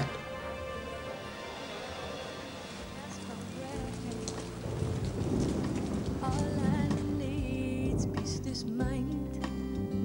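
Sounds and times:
rain falling: 0:00.0 - 0:08.7
low rumble of thunder: 0:02.5 - 0:08.6.

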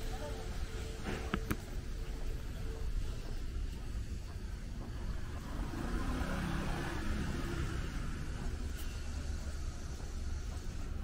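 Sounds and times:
street low rumble: 0:00.0 - 0:11.0
vehicle passing by: 0:04.8 - 0:11.0.

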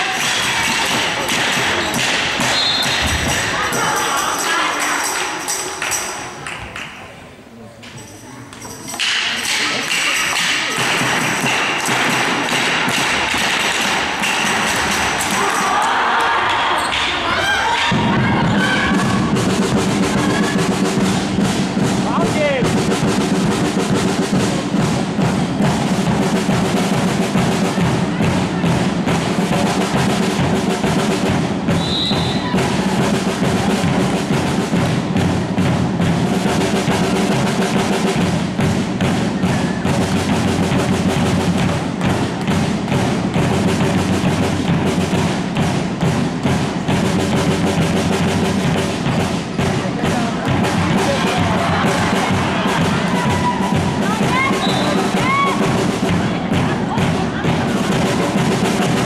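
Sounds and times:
music with drumbeat: 0:00.0 - 0:06.8, 0:08.6 - 0:59.0
crowd voices: 0:00.0 - 0:59.0.

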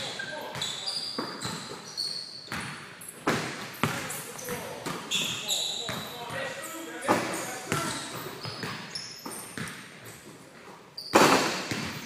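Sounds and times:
basketballs bouncing on hardwood floor: 0:00.5 - 0:06.5, 0:07.1 - 0:10.4, 0:11.1 - 0:12.0.

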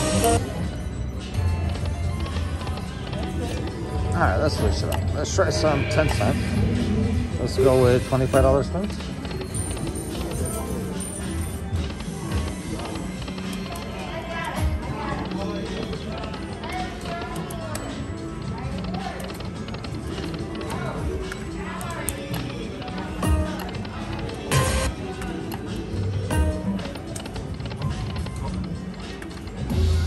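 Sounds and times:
slot machine music and jingles: 0:00.0 - 0:21.6, 0:22.5 - 0:30.0
murmur of voices: 0:02.2 - 0:30.0.

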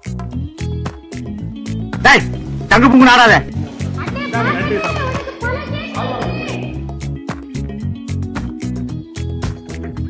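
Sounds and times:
background music with steady beat: 0:00.0 - 0:10.0
people chattering and calling out: 0:02.0 - 0:07.2.

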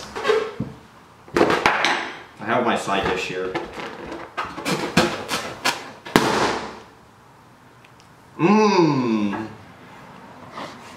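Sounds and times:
balloon bursting: 0:04.7 - 0:06.8.

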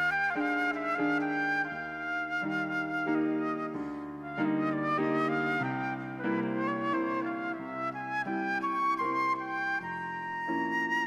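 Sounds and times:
flute melody: 0:00.0 - 0:11.0.

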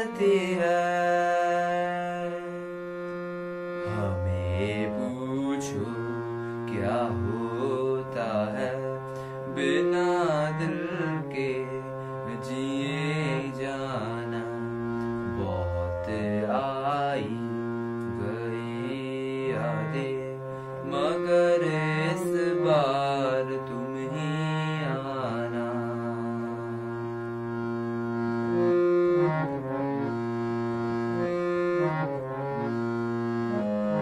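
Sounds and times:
man singing ornamented notes: 0:00.0 - 0:03.0, 0:03.8 - 0:27.2
harmonium chords: 0:00.0 - 0:34.0.

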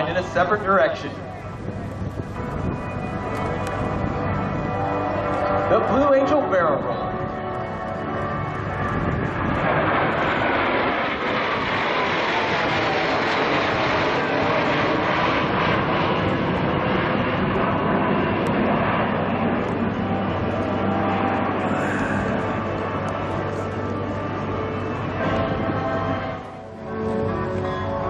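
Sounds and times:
jets flying over: 0:00.0 - 0:28.0.

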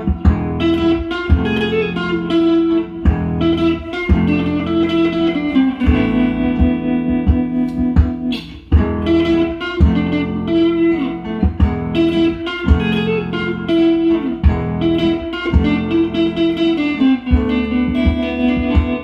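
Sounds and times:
electric guitar plucked melody: 0:00.0 - 0:19.0
nylon-string guitar backing: 0:00.0 - 0:19.0.

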